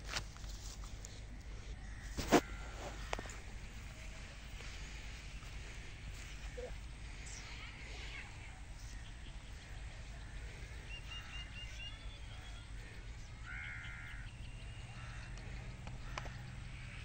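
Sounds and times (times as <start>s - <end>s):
low background hum: 0.0s - 17.0s
birds calling: 0.8s - 17.0s.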